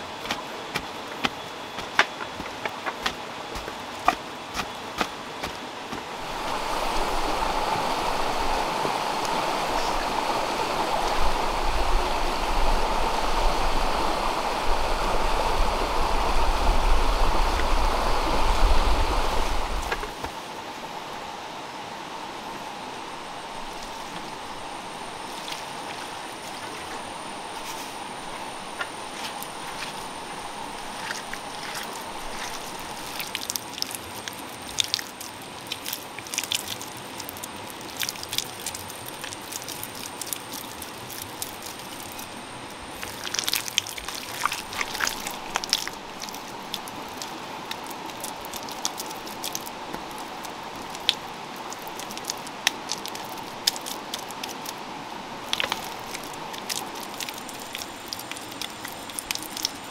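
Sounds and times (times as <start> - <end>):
hands digging loose earth: 30.8 - 34.0
wet mud squelching: 30.8 - 42.3, 42.9 - 54.8.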